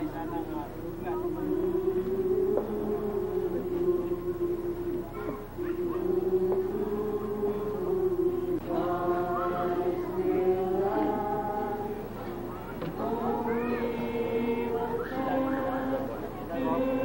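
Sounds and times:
group singing a slow hymn: 0.0 - 17.0.

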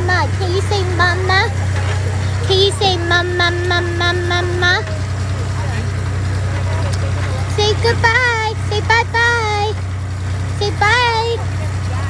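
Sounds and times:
engine droning: 0.0 - 12.0
faint voices: 0.0 - 12.0.

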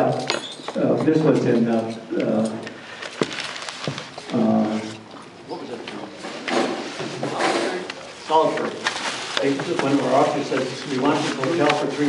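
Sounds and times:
plastic bag rustling: 2.9 - 4.9, 8.0 - 12.0
indistinct voices: 4.3 - 6.4.

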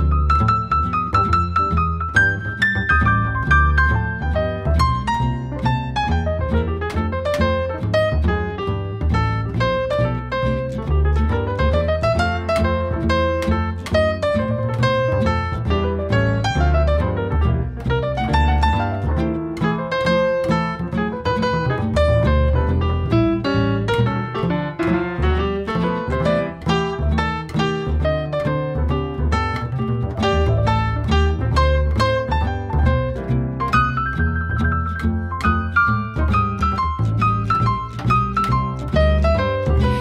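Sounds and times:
double bass: 0.0 - 40.0
plucked jazz guitar: 0.0 - 40.0.

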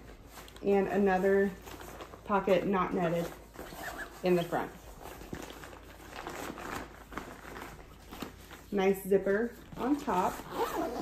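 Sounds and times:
fabric bag rustling: 0.0 - 11.0.

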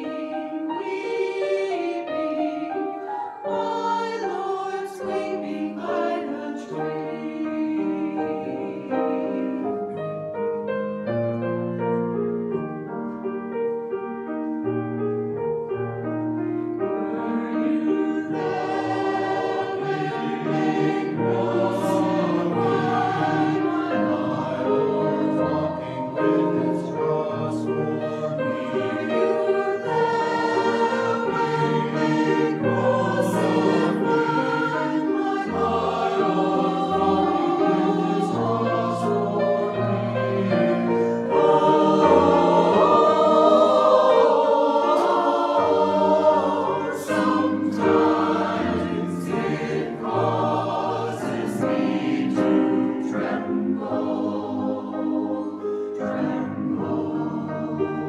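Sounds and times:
mixed choir singing: 0.0 - 10.3, 16.8 - 58.0.

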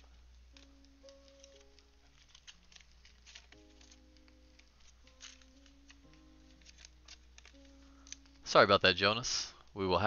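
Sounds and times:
faint background music: 0.0 - 10.0
trading cards ticking: 0.1 - 9.8.

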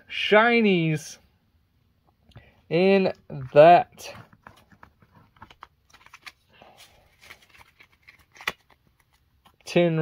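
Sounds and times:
trading cards rustling: 3.4 - 9.7.

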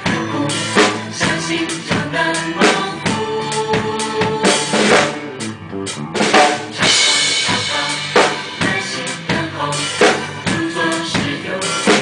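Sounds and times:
drum kit played with sticks: 0.0 - 12.0
recorded song: 0.0 - 12.0.

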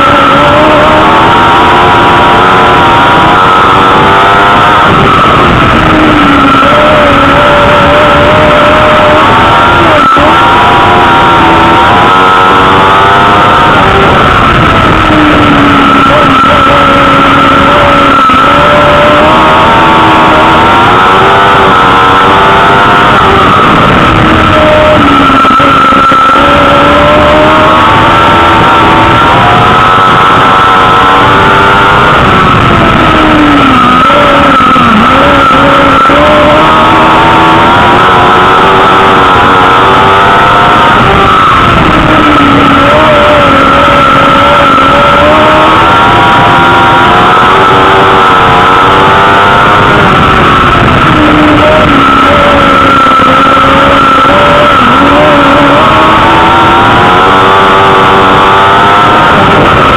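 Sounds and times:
high whine: 0.0 - 59.9
race car engine: 0.0 - 59.9.

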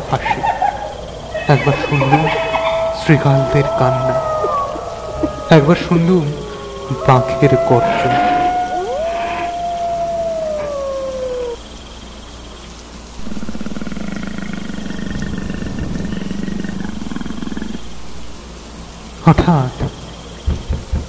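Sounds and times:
low rough animal growl: 0.0 - 11.6, 13.2 - 18.0
jackal howling: 0.0 - 11.8.

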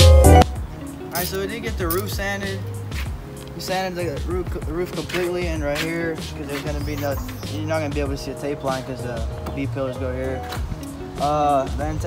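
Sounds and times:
quiet background music: 0.0 - 12.0
man talking: 1.1 - 2.7, 3.5 - 10.6, 11.2 - 12.0.

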